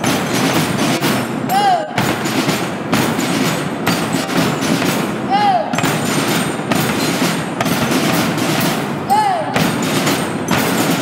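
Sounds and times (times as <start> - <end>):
marching band percussion: 0.0 - 11.0
person calling out: 1.5 - 2.0, 5.3 - 5.8, 9.1 - 9.6.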